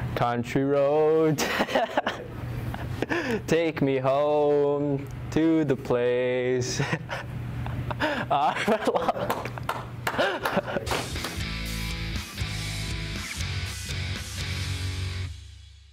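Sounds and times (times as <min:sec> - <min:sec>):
boy laughing: 0:06.8 - 0:11.1
music with guitar and beat: 0:10.9 - 0:15.9.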